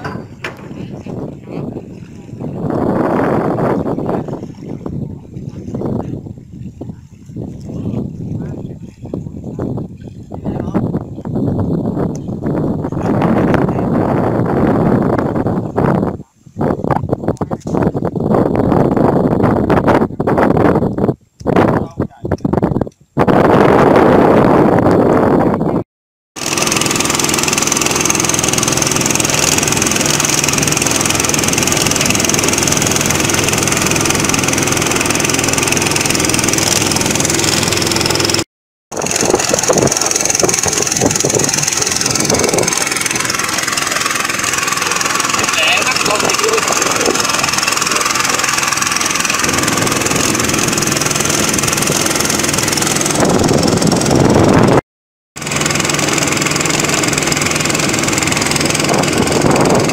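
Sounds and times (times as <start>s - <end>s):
boat motor droning: 0.0s - 20.9s, 26.4s - 54.8s, 55.4s - 59.9s
water and wind noise: 0.0s - 25.8s, 26.4s - 54.8s, 55.4s - 59.9s.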